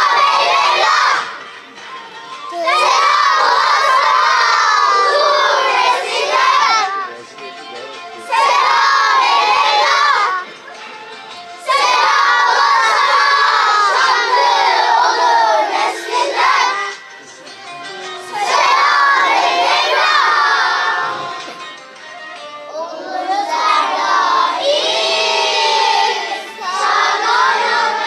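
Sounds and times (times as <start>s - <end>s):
children's choir chanting: 0.0s - 1.6s, 2.5s - 7.0s, 8.2s - 10.5s, 11.6s - 17.0s, 18.1s - 21.6s, 22.7s - 28.0s.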